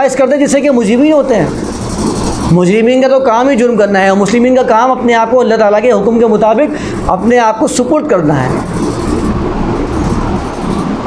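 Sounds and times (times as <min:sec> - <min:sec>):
low rumbling noise with hiss: 0:00.0 - 0:11.0.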